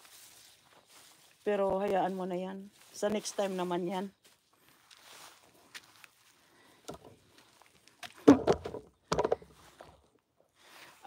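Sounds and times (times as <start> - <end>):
footsteps: 0.0 - 11.0
phone handling rustles and knocks: 6.8 - 7.2, 8.2 - 10.0.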